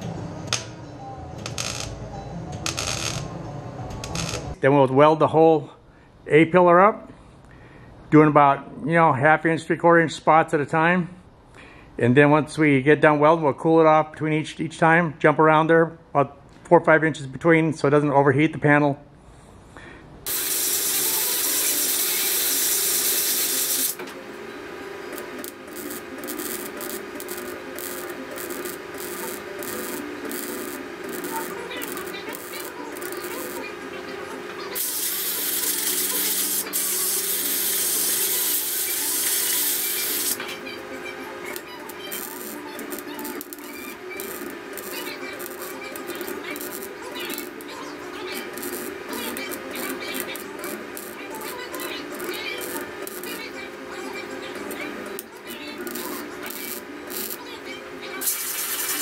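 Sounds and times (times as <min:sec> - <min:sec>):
arc welding crackling: 0:02.7 - 0:03.3, 0:03.9 - 0:04.6, 0:20.3 - 0:59.0.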